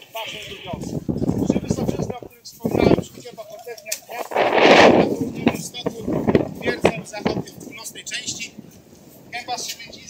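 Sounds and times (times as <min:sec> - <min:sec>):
faint voices: 0:00.0 - 0:10.0
wind rush on microphone: 0:00.0 - 0:10.0.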